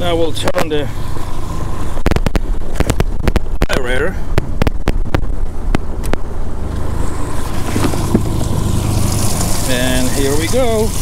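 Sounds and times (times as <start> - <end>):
pump humming: 6.5 - 11.0
water spraying: 7.0 - 11.0.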